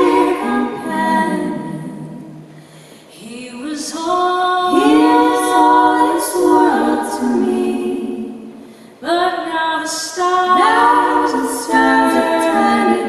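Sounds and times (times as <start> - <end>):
women singing in harmony: 0.0 - 2.5, 3.1 - 13.0.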